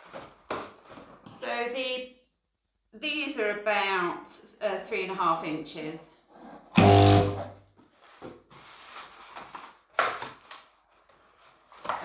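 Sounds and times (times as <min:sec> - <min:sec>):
balloon inflator motor hum: 0:06.8 - 0:07.5.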